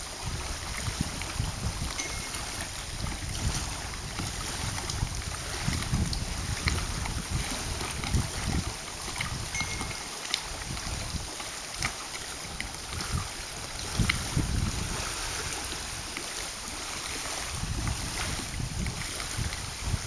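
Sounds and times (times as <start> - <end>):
lake waves lapping at shore: 0.0 - 20.0
wind buffeting microphone: 0.0 - 20.0.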